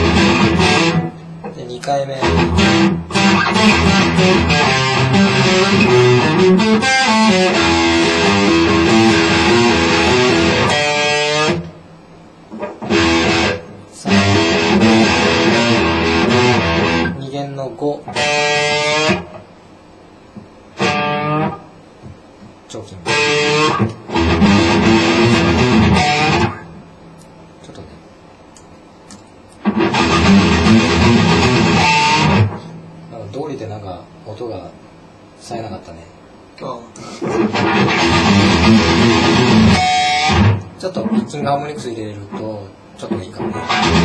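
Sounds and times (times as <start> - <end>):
electric guitar through amplifier: 0.0 - 17.3, 18.0 - 19.6, 20.3 - 22.3, 22.9 - 27.3, 29.5 - 33.1, 37.0 - 44.0.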